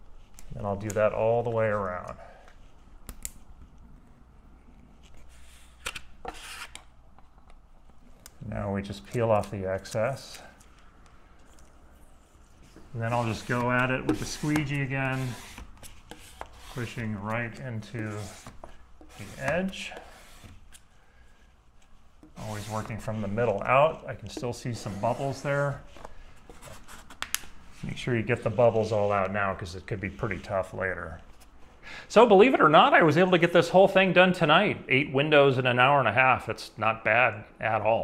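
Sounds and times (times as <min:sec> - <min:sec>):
squeegee rubbing on wet glass: 0:12.9 - 0:20.6.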